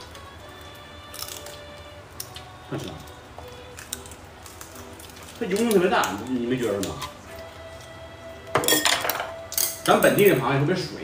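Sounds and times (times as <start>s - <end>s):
crab shells cracking: 0.0s - 7.4s
faint background music: 0.0s - 11.0s.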